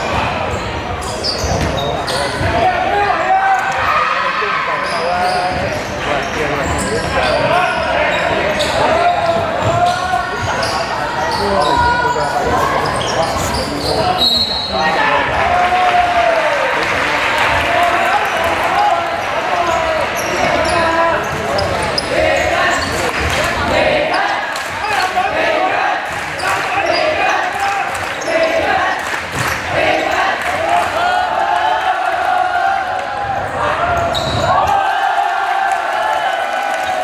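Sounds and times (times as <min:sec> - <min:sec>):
voices calling and shouting: 0:00.0 - 0:35.4.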